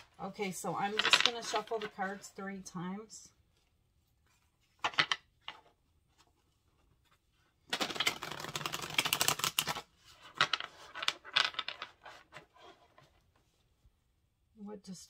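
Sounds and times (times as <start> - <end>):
cards riffle shuffling: 7.7 - 9.9
cards snapping and tapping: 7.8 - 9.8.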